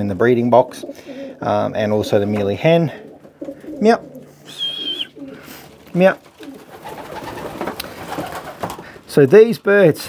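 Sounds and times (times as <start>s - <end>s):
pigeons cooing: 0.4s - 8.9s
short high whistle: 4.5s - 5.1s
brief voiced call: 4.5s - 5.2s.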